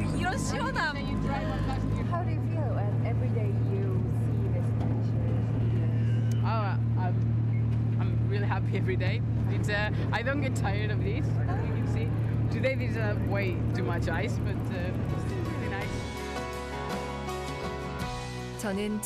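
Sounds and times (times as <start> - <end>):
people's voices: 0.0 - 7.2
boat engine humming: 0.0 - 19.0.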